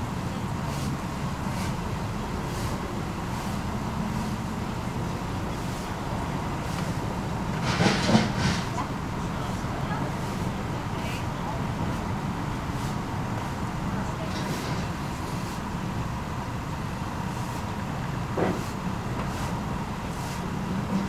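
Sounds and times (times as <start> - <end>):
faint indistinct voices: 0.0 - 16.0
road traffic rumble: 0.0 - 21.0.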